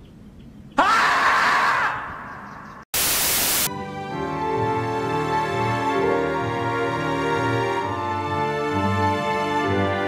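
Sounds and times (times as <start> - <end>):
loud animal scream: 0.8 - 2.1
static hiss: 3.0 - 3.7.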